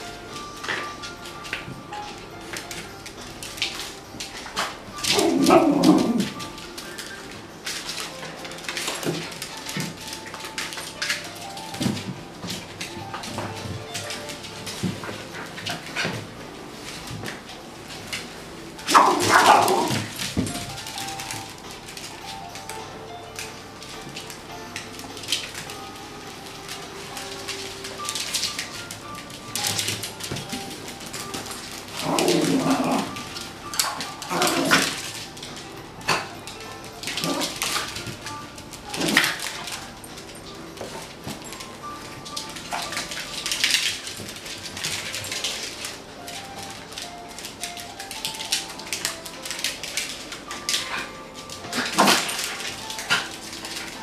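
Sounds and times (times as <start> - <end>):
faint background music: 0.0 - 54.0
dogs yipping and barking: 4.5 - 7.3, 18.8 - 20.2, 31.5 - 35.4, 37.0 - 38.0, 50.4 - 54.0.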